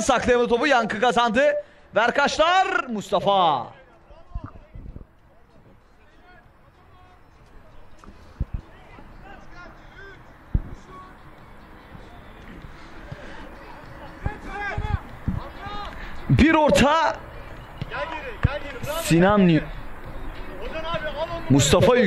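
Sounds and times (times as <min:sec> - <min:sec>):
players calling out: 0:05.9 - 0:22.0.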